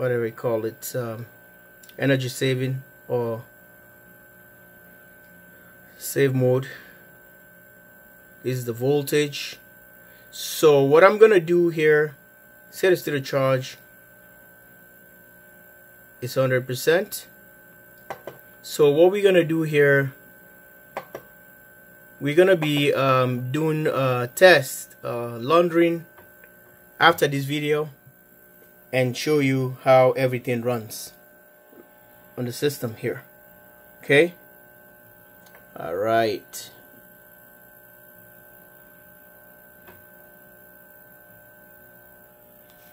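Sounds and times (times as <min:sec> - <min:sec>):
inverter electrical hum: 0:00.0 - 0:42.9.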